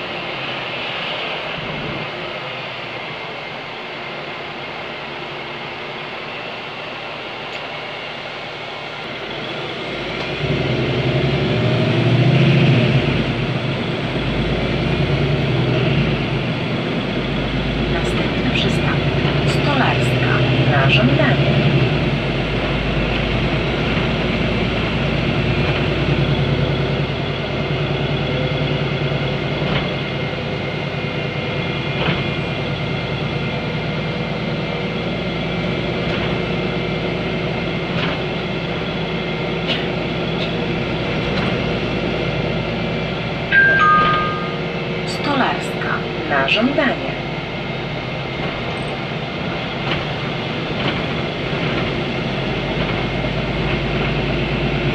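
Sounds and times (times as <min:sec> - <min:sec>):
bus diesel engine: 0:00.0 - 0:54.9.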